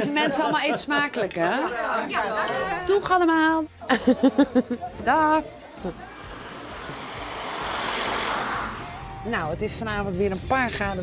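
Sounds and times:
van driving past: 0:05.8 - 0:09.3.

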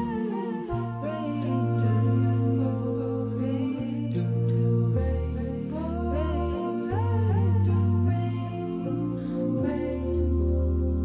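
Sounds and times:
a cappella vocal ensemble chord: 0:00.0 - 0:11.0
low bass voice: 0:00.0 - 0:11.0.

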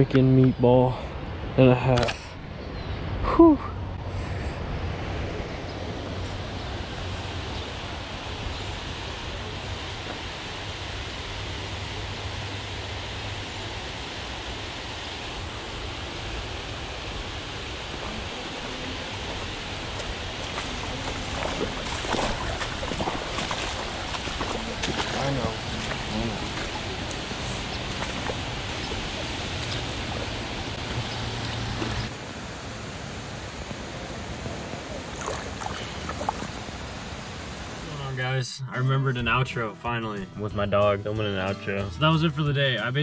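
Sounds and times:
wind on microphone: 0:15.1 - 0:32.1
water pouring over a weir: 0:35.1 - 0:36.6.

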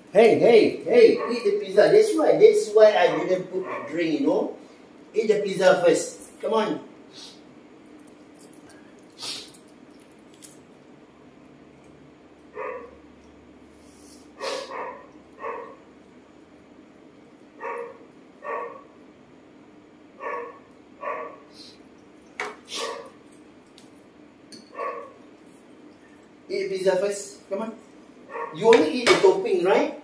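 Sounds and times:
dog barking: 0:01.1 - 0:01.6, 0:03.1 - 0:04.0, 0:12.5 - 0:13.0, 0:14.4 - 0:15.8, 0:17.6 - 0:18.9, 0:20.2 - 0:21.5, 0:22.7 - 0:23.2, 0:24.7 - 0:25.2, 0:28.3 - 0:28.6.

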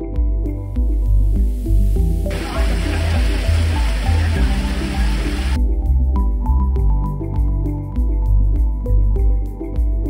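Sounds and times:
background music with bass line: 0:00.0 - 0:10.0
water pouring into a pool: 0:02.3 - 0:05.6.

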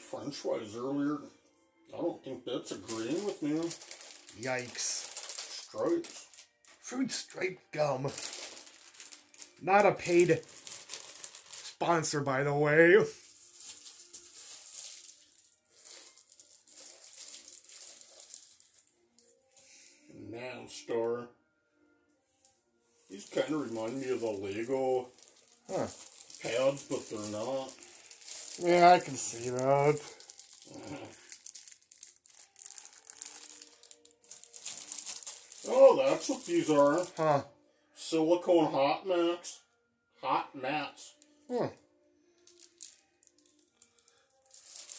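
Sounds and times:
packaged items rustling and rattling: 0:02.7 - 0:19.7, 0:23.0 - 0:37.4, 0:42.4 - 0:44.9
plastic wrapping crinkling: 0:02.7 - 0:20.0, 0:23.0 - 0:37.4, 0:42.4 - 0:44.9.

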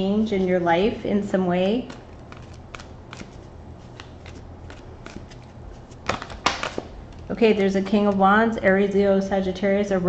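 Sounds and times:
cards being shuffled: 0:01.8 - 0:07.3.

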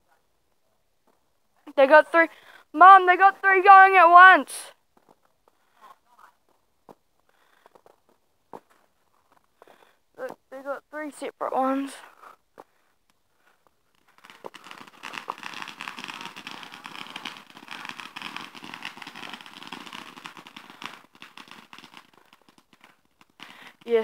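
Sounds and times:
fireworks crackling: 0:01.7 - 0:04.8, 0:13.4 - 0:24.0.

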